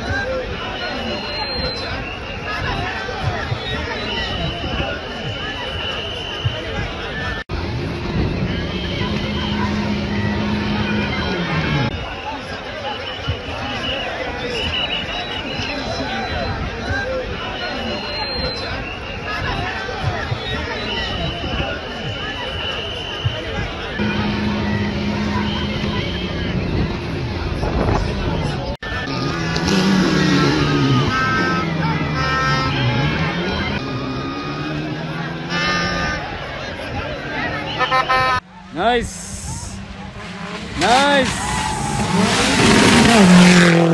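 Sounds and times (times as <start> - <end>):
crowd chatter: 0.0 - 43.9
voices: 0.0 - 43.9
rally car engine revving: 7.6 - 11.9, 24.0 - 36.5, 38.5 - 43.9.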